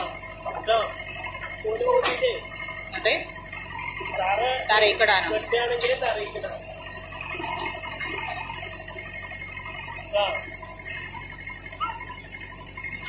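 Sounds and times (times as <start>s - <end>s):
steady low hum: 0.0s - 13.0s
voices talking indistinctly: 0.0s - 13.0s.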